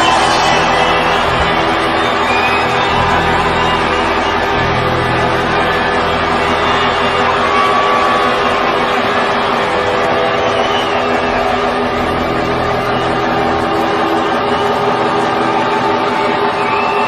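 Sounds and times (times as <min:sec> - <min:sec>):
distorted electric guitar feedback: 0:00.0 - 0:17.0.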